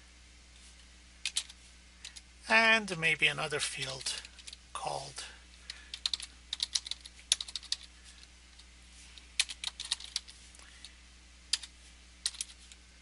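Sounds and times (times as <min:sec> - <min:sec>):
keyboard typing: 0:01.2 - 0:02.2, 0:05.7 - 0:07.9, 0:09.4 - 0:10.4, 0:11.5 - 0:12.8.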